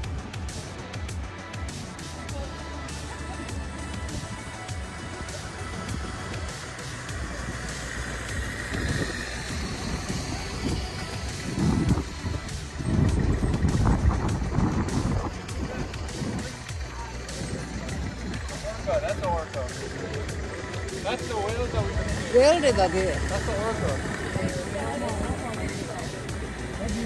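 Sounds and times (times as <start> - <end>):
wind rumbling on microphone: 3.5 - 19.2, 20.2 - 27.0.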